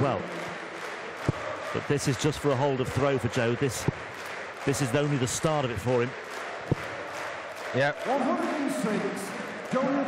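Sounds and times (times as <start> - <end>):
arena crowd noise: 0.0 - 10.0
man talking: 1.8 - 3.9, 4.6 - 6.1, 7.7 - 10.0.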